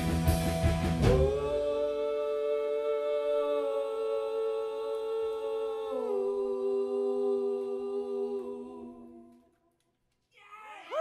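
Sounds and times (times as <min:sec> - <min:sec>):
rock band chords ringing: 0:00.0 - 0:01.6.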